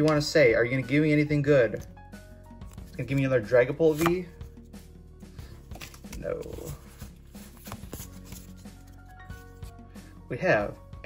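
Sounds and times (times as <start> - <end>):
quiet background music: 0.0 - 11.0
trading cards clicking and sliding: 2.6 - 4.8, 5.6 - 9.8.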